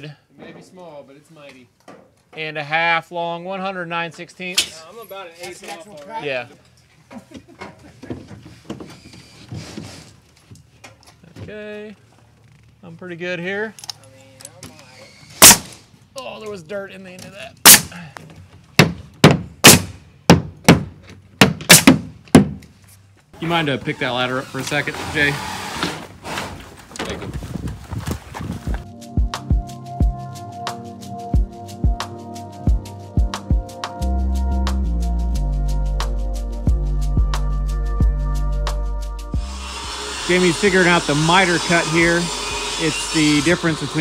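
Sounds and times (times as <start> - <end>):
music with drum beat: 28.8 - 39.5.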